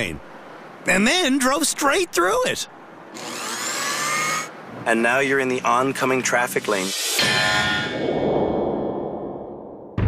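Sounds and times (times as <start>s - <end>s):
metallic clang ringing: 7.1s - 8.2s.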